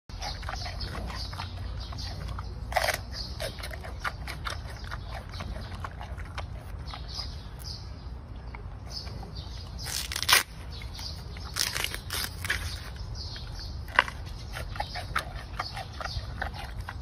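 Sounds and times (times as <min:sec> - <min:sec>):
panda chewing bamboo: 0:00.1 - 0:07.8, 0:08.9 - 0:17.0.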